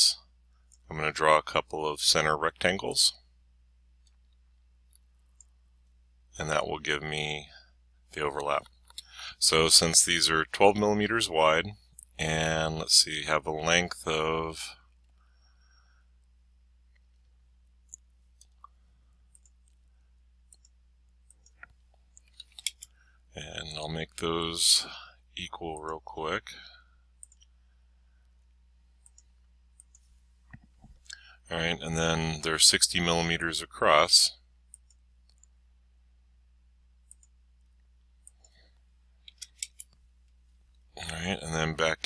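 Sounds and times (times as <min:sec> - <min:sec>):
man speaking: 0:00.0 - 0:00.2, 0:00.9 - 0:03.2, 0:06.4 - 0:14.8, 0:23.4 - 0:26.8, 0:31.4 - 0:34.4, 0:41.0 - 0:42.0
low steady hum: 0:00.0 - 0:42.0
computer mouse clicks: 0:16.9 - 0:19.8, 0:20.4 - 0:23.0, 0:27.2 - 0:27.6, 0:29.0 - 0:31.3, 0:34.7 - 0:35.6, 0:37.0 - 0:37.4, 0:38.2 - 0:40.0
computer mouse and keyboard clicks: 0:20.5 - 0:23.0, 0:27.2 - 0:27.5, 0:39.2 - 0:40.0.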